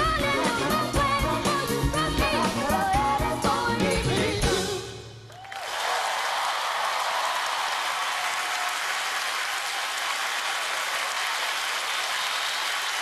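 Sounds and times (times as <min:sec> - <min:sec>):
audience applauding: 0:05.3 - 0:13.0.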